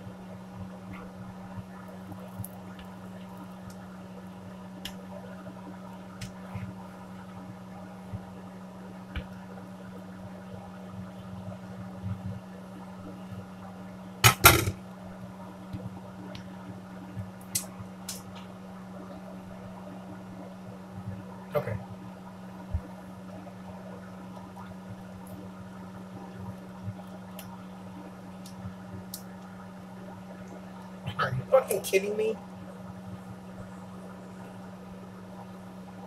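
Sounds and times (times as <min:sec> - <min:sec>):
low kitchen hum: 0:00.0 - 0:36.0.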